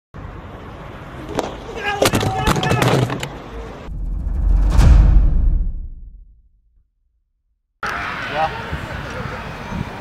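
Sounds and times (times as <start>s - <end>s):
people shouting: 1.7s - 3.0s
deep boom with whoosh: 3.9s - 7.4s.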